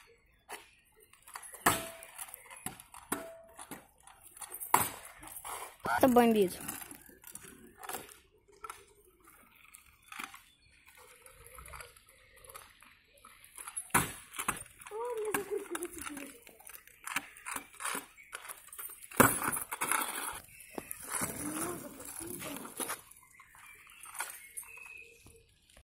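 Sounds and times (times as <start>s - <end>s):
scooter clattering on asphalt: 0.0s - 25.8s.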